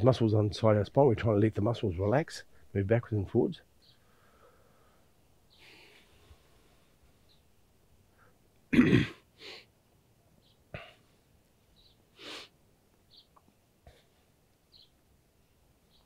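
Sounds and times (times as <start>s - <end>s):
man breathing faintly: 3.9s - 7.2s
throat cough burst: 8.7s - 9.2s.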